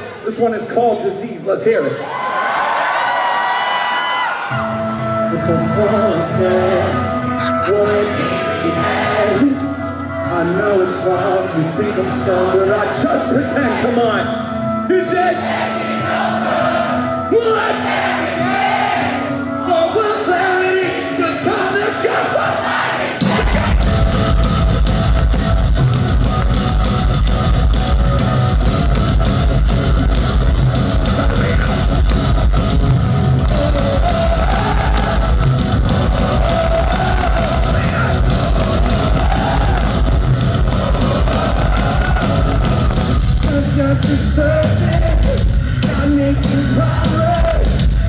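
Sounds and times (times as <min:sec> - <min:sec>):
distorted guitars: 0:04.5 - 0:48.0
metalcore band playing live: 0:16.9 - 0:48.0
pounding drums: 0:23.2 - 0:48.0
person singing: 0:33.4 - 0:35.4, 0:43.4 - 0:47.8.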